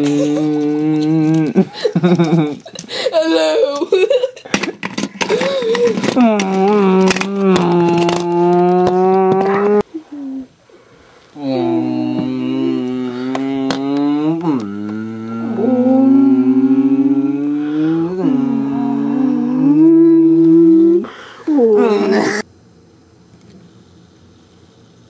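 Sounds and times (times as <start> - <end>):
man humming low tones: 0.0 - 2.6, 5.9 - 10.5, 11.4 - 22.4.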